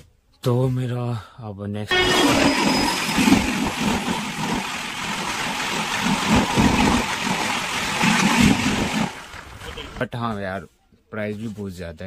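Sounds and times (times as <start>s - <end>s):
moving train noise: 1.9s - 9.9s
passing train coaches: 1.9s - 10.0s.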